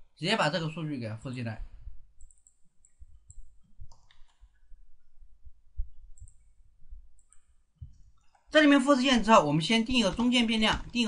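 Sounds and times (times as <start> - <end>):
soft computer mouse clicks: 2.2 - 4.7, 6.1 - 6.6, 7.2 - 8.5.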